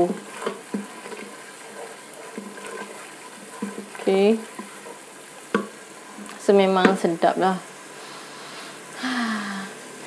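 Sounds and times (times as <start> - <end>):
spatula scraping pot: 0.0 - 7.3
paste sizzling in oil: 0.0 - 9.0.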